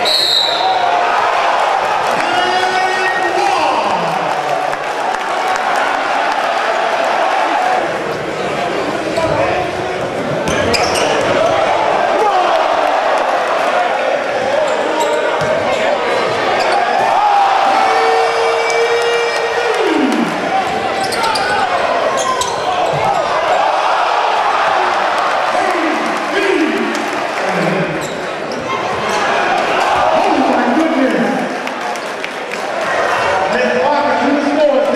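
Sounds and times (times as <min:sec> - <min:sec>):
crowd chatter: 0:00.0 - 0:34.9
crowd shouts: 0:00.0 - 0:34.9.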